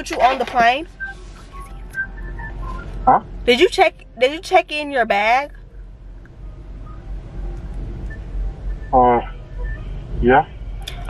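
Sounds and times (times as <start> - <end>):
low background hum: 0.0 - 11.0
soft whistling: 0.8 - 3.1, 5.5 - 10.2.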